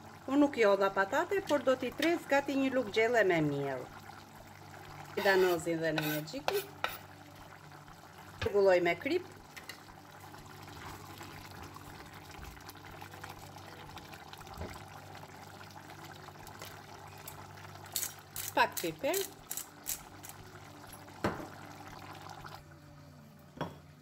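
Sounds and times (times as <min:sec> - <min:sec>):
stew bubbling in pan: 0:00.0 - 0:22.7.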